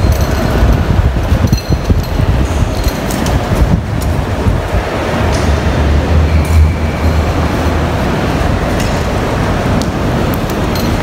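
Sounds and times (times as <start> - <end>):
luggage trolley wheels rumbling: 0.0 - 11.0.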